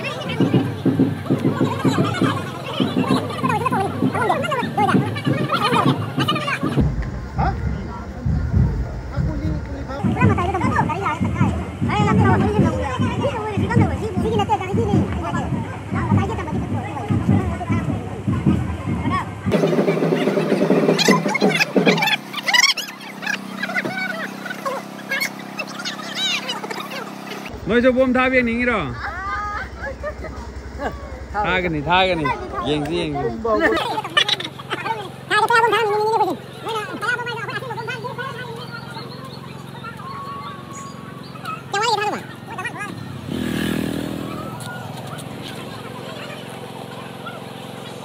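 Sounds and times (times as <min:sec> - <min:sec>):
low engine hum: 0:00.0 - 0:48.0
people talking: 0:00.0 - 0:48.0
steady low hum: 0:06.7 - 0:12.9, 0:27.4 - 0:35.3
rushing noise: 0:06.8 - 0:11.0.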